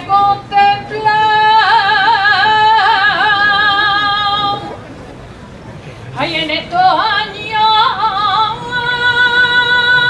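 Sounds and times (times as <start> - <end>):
solo voice singing unaccompanied: 6.2 - 10.0.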